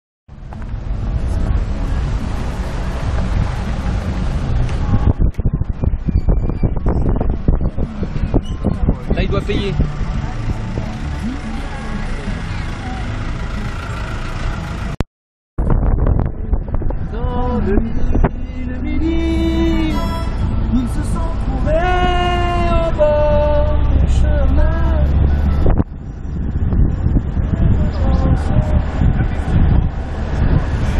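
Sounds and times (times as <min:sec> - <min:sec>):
wind buffeting microphone: 0:00.3 - 0:13.4, 0:15.6 - 0:30.9
low rumble of car driving: 0:00.3 - 0:15.0, 0:15.6 - 0:30.9
vehicle engine and road noise: 0:00.3 - 0:15.0, 0:15.6 - 0:30.9.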